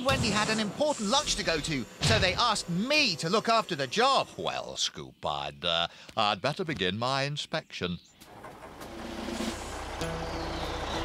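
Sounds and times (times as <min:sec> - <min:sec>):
engine idling: 0:08.2 - 0:11.0.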